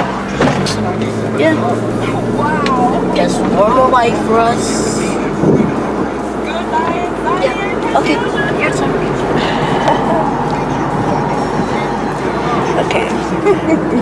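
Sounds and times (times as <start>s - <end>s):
faint voices: 0.0s - 14.0s
road and engine noise in car: 0.0s - 14.0s.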